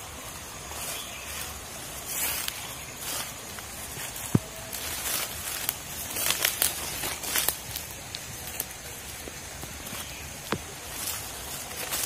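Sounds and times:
footsteps through dry leaves: 0:00.0 - 0:12.0.

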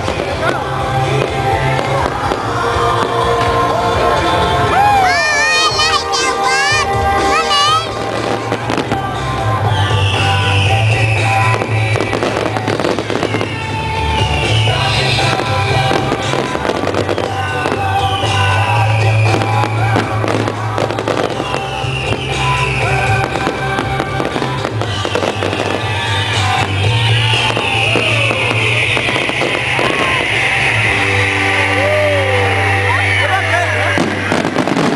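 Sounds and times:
fireworks bangs and crackles: 0:00.0 - 0:34.9
loud music: 0:00.0 - 0:34.9
falling firework whistle: 0:01.0 - 0:34.9.

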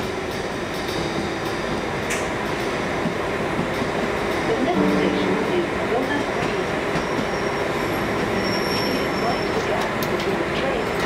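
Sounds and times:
urban traffic rumble: 0:00.0 - 0:11.0.

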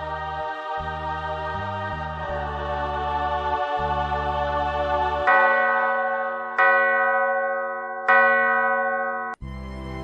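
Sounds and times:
music with low drone: 0:09.4 - 0:10.0.

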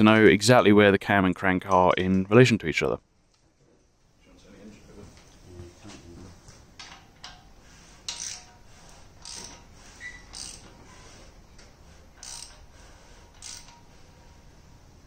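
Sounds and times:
hand ratchet clicking: 0:06.8 - 0:10.8, 0:12.2 - 0:12.7, 0:13.3 - 0:13.9.

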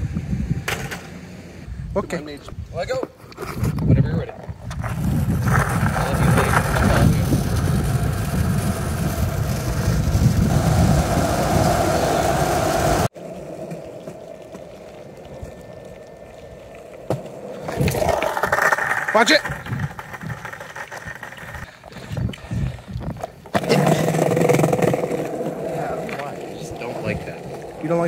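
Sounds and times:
skateboard wheels rolling on asphalt: 0:00.0 - 0:28.0
voices: 0:25.3 - 0:28.0.

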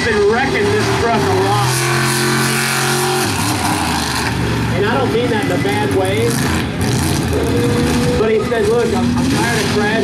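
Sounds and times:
truck engine revving high: 0:00.0 - 0:10.0
voices: 0:07.4 - 0:10.0.

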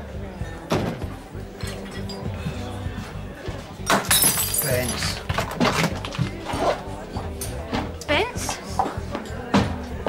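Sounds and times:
glass shards tinkling: 0:01.6 - 0:02.3, 0:03.9 - 0:05.2
glass breaking: 0:03.9 - 0:05.2.

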